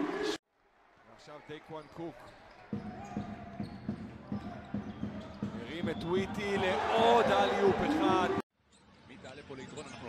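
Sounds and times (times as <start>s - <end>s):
arena crowd noise: 0.0s - 8.4s.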